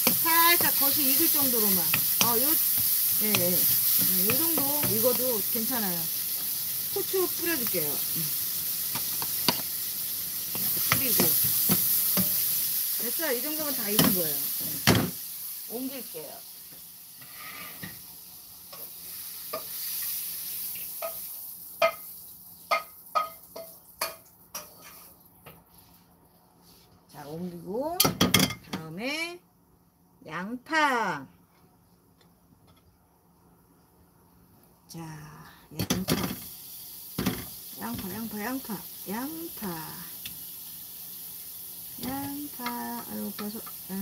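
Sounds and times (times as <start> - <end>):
oil sizzling: 0.0 - 26.2, 35.8 - 44.0
vegetables scraped from wok: 24.6 - 25.2.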